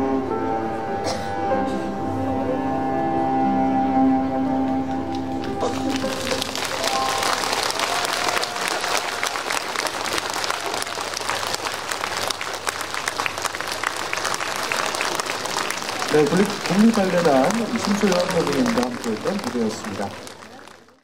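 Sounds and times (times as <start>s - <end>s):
music: 0.0s - 7.8s
audience applauding: 4.8s - 21.0s.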